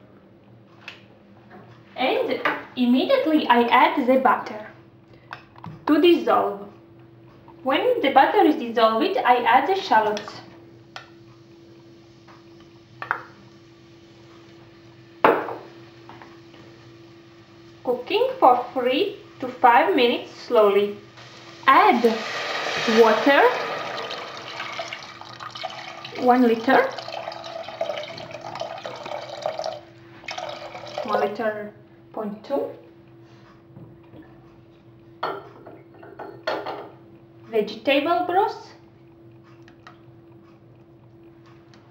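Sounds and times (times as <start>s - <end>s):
faint steady hum: 0.0s - 41.9s.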